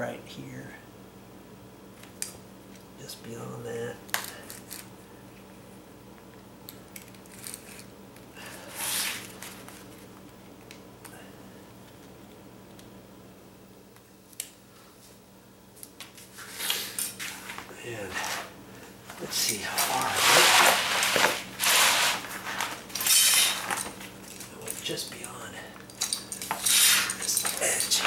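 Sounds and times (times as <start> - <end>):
clattering and scraping handling: 16.4 - 24.9, 25.8 - 28.0.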